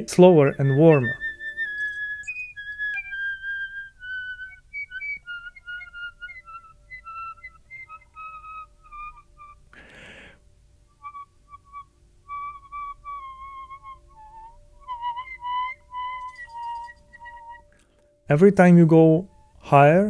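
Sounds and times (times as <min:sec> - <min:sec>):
piccolo whistle tones: 0:00.0 - 0:17.9, 0:19.1 - 0:19.6
breath hiss: 0:09.7 - 0:10.4.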